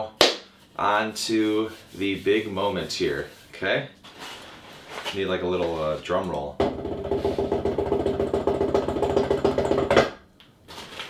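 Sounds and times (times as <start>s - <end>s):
drum roll: 6.6s - 10.1s.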